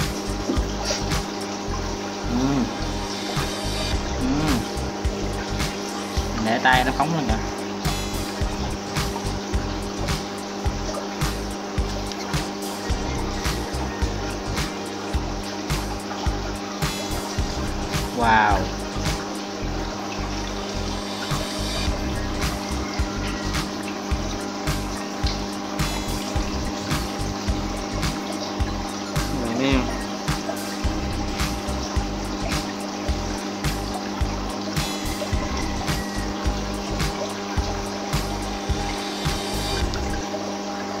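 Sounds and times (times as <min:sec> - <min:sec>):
aquarium filter pump humming: 0:00.0 - 0:41.0
water trickling and bubbling: 0:00.0 - 0:41.0
short voiced exclamation: 0:02.3 - 0:02.8, 0:29.4 - 0:30.0.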